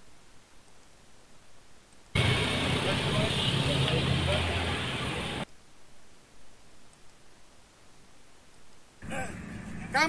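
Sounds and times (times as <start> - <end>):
people's voices: 2.2 - 5.4
vehicle engine running: 2.2 - 5.4.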